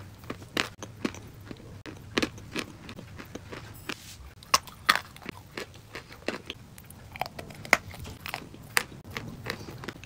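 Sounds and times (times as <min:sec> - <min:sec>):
chewing crunchy chalk: 0:00.2 - 0:10.0.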